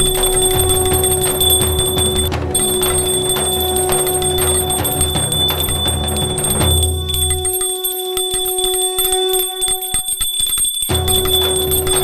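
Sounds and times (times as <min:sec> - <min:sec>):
hand bell rung rapidly: 0:00.0 - 0:09.4, 0:10.1 - 0:12.0
devotional music: 0:00.0 - 0:12.0.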